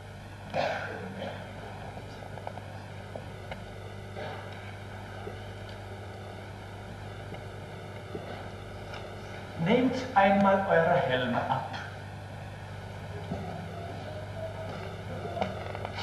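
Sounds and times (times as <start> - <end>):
electrical hum and hiss: 0.0 - 16.0.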